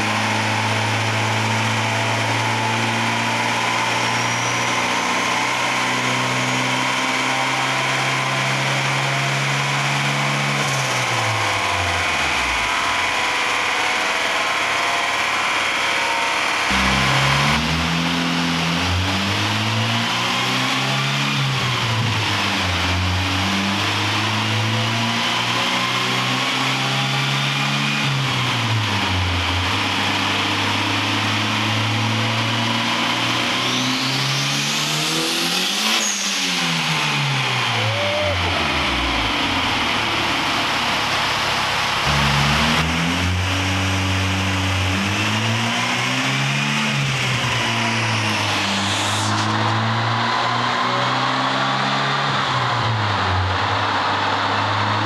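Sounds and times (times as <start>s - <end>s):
car engine revving: 0.0s - 55.0s
high whine: 0.1s - 19.5s, 33.8s - 45.6s, 46.9s - 50.9s.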